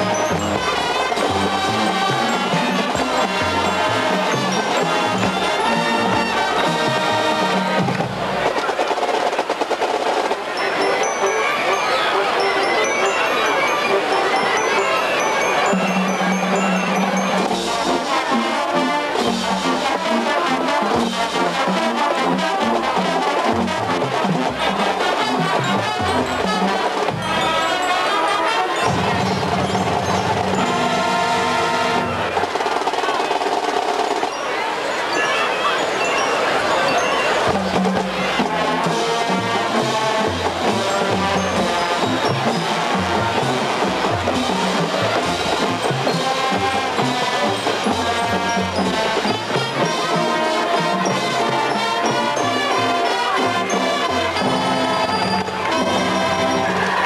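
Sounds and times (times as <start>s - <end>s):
drumline beat: 0.0s - 14.9s, 15.5s - 34.5s, 37.4s - 57.0s
marching band brass: 0.0s - 57.0s.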